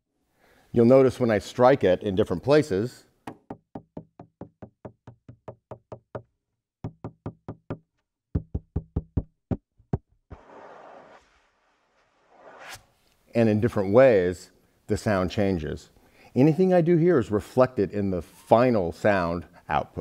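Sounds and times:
fingers tapping electronic drum: 8.4 - 9.6.

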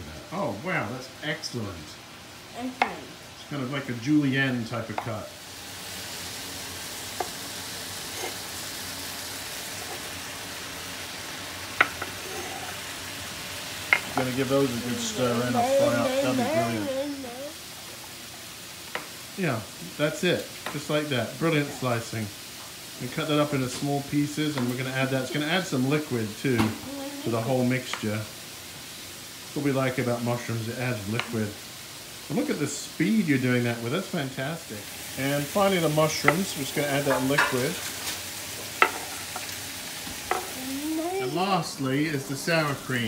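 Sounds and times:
food sizzling in a pan: 0.0 - 43.0.

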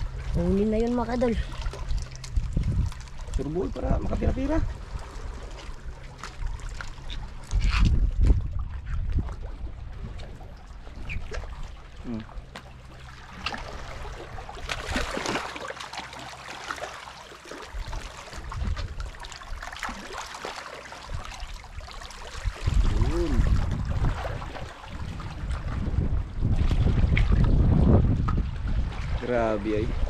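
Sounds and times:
wind buffeting microphone: 0.0 - 5.4, 7.0 - 12.2, 17.7 - 19.2, 21.1 - 30.0
water trickling and splashing: 0.0 - 30.0.

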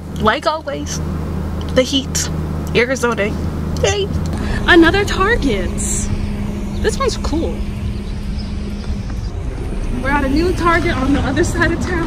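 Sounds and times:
low hum: 0.0 - 12.0
low outdoor rumble: 0.0 - 12.0.

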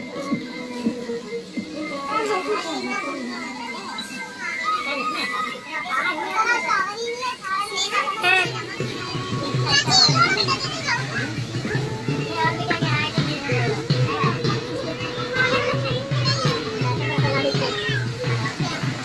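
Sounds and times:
adults talking: 0.0 - 19.0
background music: 0.0 - 19.0
children chattering: 0.0 - 19.0.

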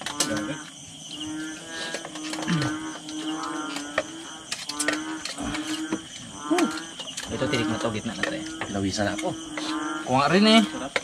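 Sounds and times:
bullfrogs calling: 0.0 - 11.0
high insect drone: 0.0 - 11.0.

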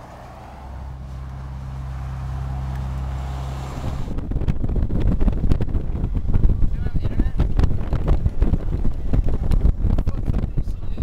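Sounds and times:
road noise: 0.0 - 11.0
van engine drone: 0.0 - 11.0.

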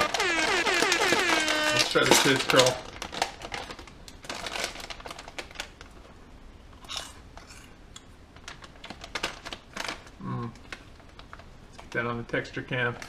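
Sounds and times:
plastic snack bag crinkling: 0.0 - 6.0, 8.4 - 11.9.

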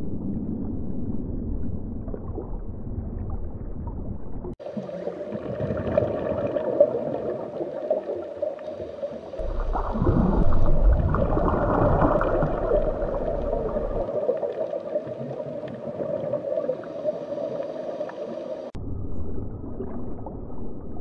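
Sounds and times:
low hum: 0.0 - 4.6, 9.4 - 14.1, 18.7 - 21.0
rumbling water surge: 0.0 - 21.0
underwater rush and gurgle: 0.0 - 21.0.

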